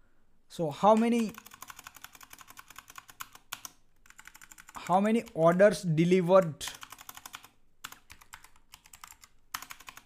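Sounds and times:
computer keyboard typing: 0.8s - 5.6s, 6.4s - 10.0s.

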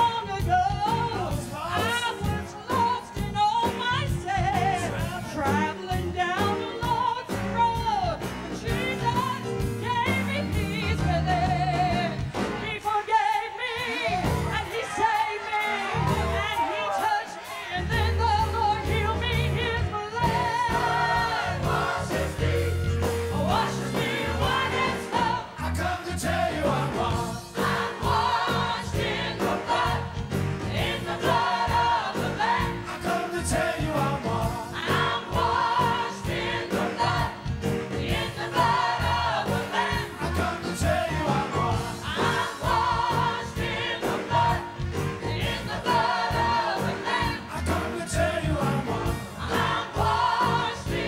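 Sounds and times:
band with bass and drums: 0.0s - 17.1s, 17.7s - 51.0s
choir singing: 8.6s - 51.0s.

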